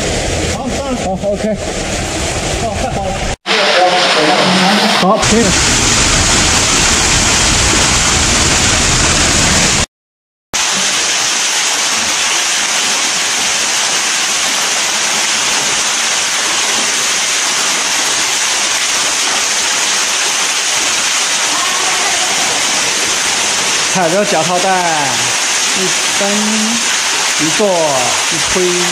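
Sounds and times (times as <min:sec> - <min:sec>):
waterfall rushing: 0:00.0 - 0:09.9, 0:10.6 - 0:28.9.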